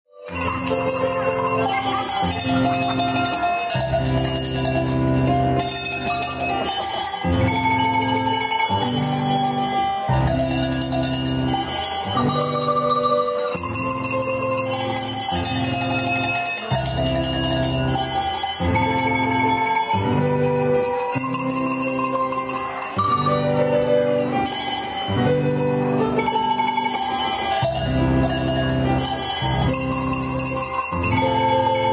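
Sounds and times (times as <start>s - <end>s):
hand bells ringing a tune: 0.2s - 31.9s
music with a steady beat: 0.2s - 31.9s.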